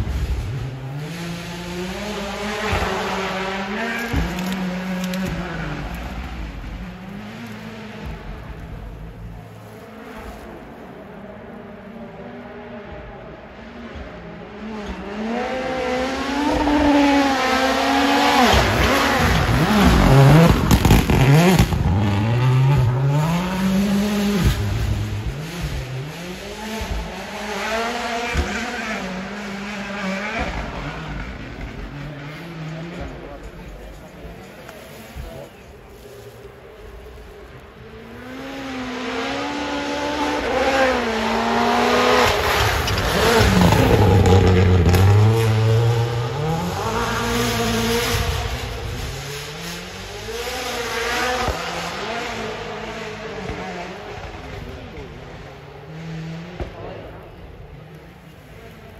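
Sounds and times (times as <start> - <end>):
rally car engine revving: 0.0 - 35.8, 36.4 - 58.9.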